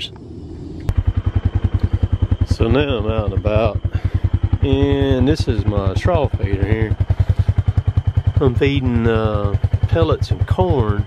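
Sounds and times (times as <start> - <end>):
engine idling: 0.0 - 11.0.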